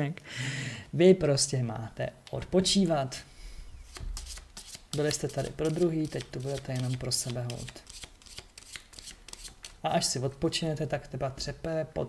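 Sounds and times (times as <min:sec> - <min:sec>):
cards being shuffled by hand: 0:03.9 - 0:09.9.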